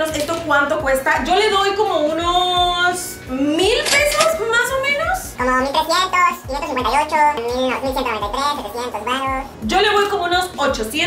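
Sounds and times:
background music: 0.0 - 11.0
woman talking: 0.0 - 11.0.

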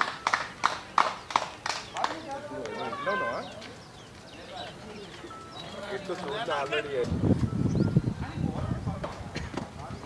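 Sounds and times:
rhythmic clapping: 0.0 - 2.8.

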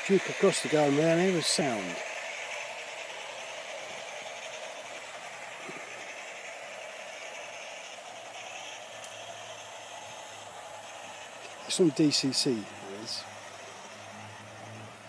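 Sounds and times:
model train whirring rumble: 0.0 - 15.0.

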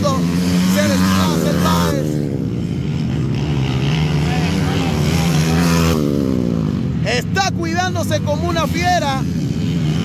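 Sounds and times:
dirt bike engines revving: 0.0 - 10.0.

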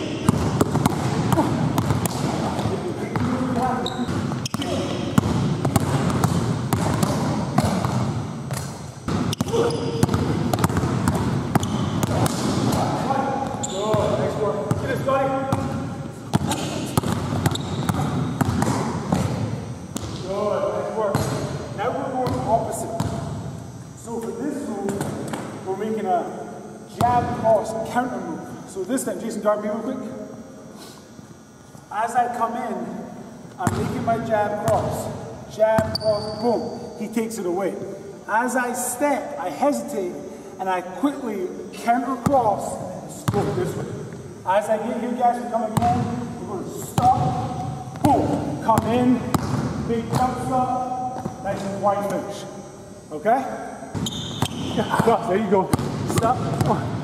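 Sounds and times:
basketball dribbling on hardwood: 0.2 - 20.2, 22.2 - 23.2, 47.0 - 50.5, 51.2 - 51.4.

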